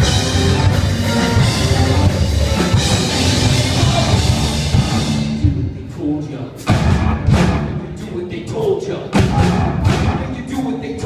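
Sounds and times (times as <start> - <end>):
live rock band playing: 0.0 - 5.9, 6.5 - 11.0.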